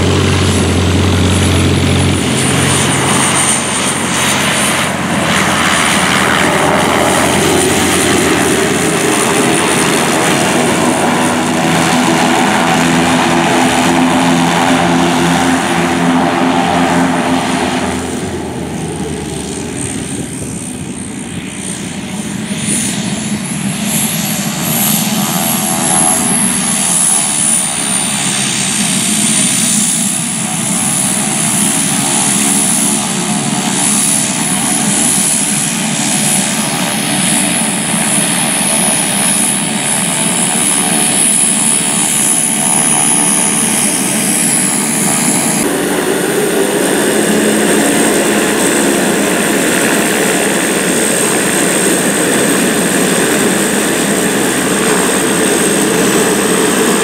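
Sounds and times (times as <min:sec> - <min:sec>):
high whine: 0:00.0 - 0:57.0
plane engine and propeller: 0:00.0 - 0:57.0.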